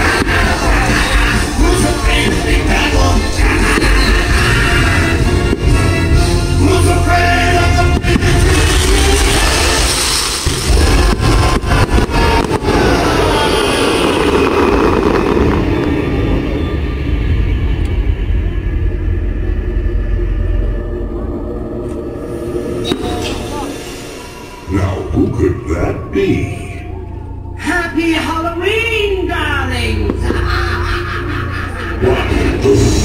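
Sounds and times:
fireworks booming and cracking: 0.0 - 17.4.

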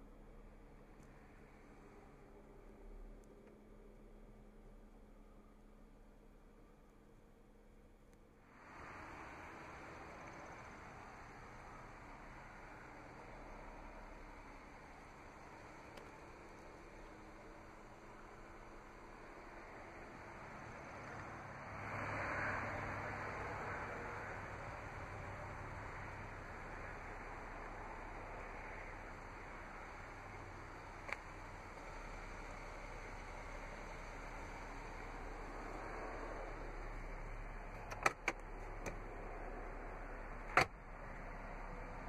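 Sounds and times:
sharp clicks: 37.7 - 39.0.

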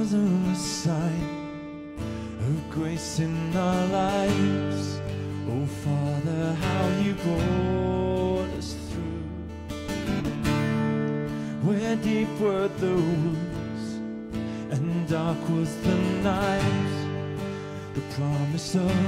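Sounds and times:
man singing worship song: 0.0 - 1.3, 2.4 - 9.5, 11.5 - 14.0, 14.6 - 17.1, 17.9 - 19.0
acoustic guitar strumming: 0.0 - 19.0.

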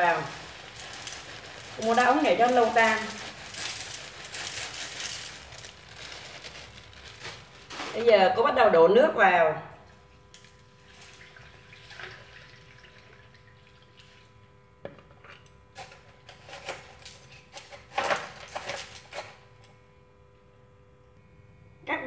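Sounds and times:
water trickling into pot: 10.9 - 14.2.

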